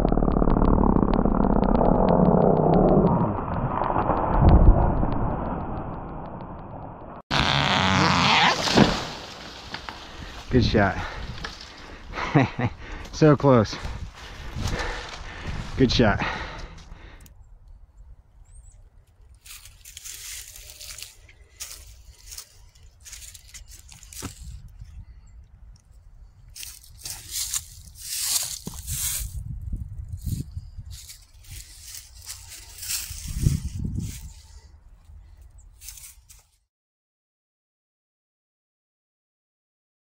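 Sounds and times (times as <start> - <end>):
low rumble: 0.0 - 7.2
footsteps crunching through dry leaves: 19.4 - 24.5, 26.6 - 29.4, 30.9 - 34.4.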